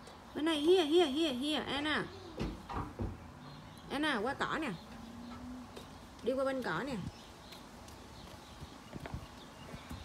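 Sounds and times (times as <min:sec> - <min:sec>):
small footsteps on concrete: 0:05.6 - 0:10.0.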